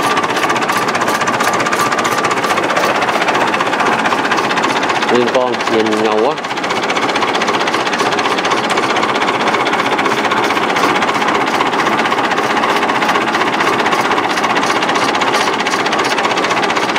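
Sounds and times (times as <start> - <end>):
rapid even ticking: 0.0 - 16.9
tractor engine running: 0.0 - 16.9.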